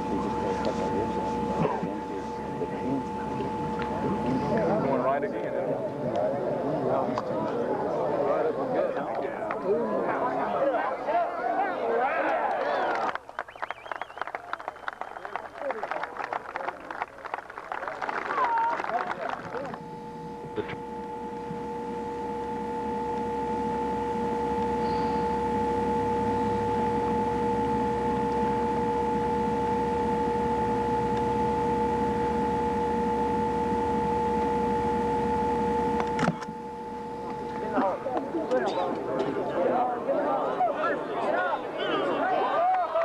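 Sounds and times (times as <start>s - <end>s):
voices: 0.0s - 23.9s, 35.6s - 43.0s
steady two-tone hum: 0.0s - 43.0s
gallery clapping: 12.2s - 19.8s.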